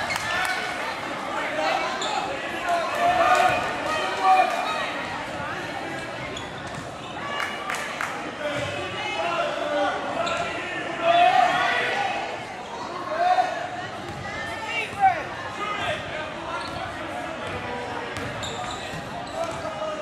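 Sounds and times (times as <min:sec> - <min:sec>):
voices shouting in gym: 0:00.0 - 0:20.0.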